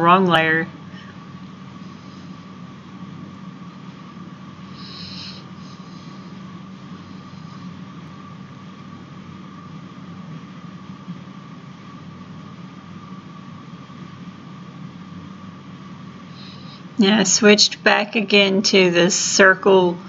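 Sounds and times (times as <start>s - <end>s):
background hum and hiss: 0.0s - 20.0s
high steady whine: 0.0s - 20.0s.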